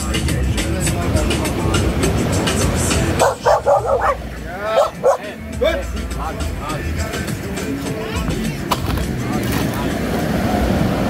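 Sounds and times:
background music with beat: 0:00.0 - 0:10.4
dog barking: 0:03.2 - 0:05.4.

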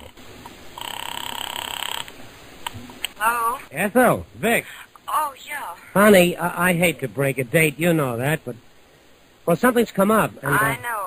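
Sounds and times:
telephone buzzing ring: 0:00.8 - 0:02.1
person speaking: 0:03.2 - 0:08.6, 0:09.5 - 0:11.0.

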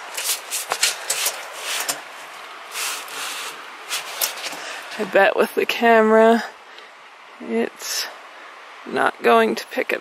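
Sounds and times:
gloves rubbing on stovepipe: 0:00.0 - 0:05.1.

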